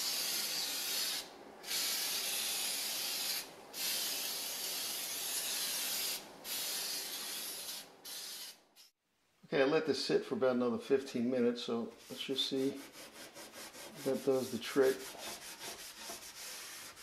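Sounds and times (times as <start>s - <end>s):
aerosol can spraying: 0.0s - 8.9s.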